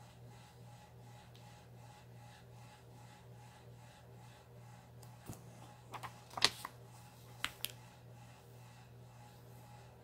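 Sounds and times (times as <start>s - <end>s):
book pages clicking: 6.0s - 6.8s.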